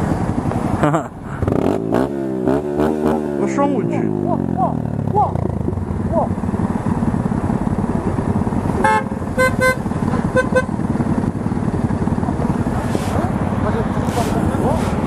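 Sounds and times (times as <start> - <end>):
motorcycle engine running: 0.0 - 15.0
vehicle horn beeping: 8.8 - 10.8.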